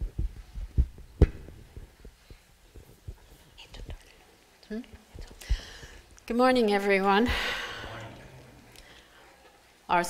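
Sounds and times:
microphone handling thumps: 0:00.0 - 0:03.2.

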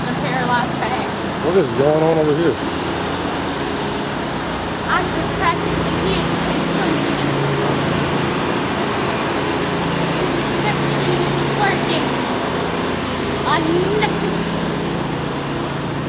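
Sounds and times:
low mechanical hum: 0:00.0 - 0:16.0
rushing urban noise: 0:00.0 - 0:16.0.

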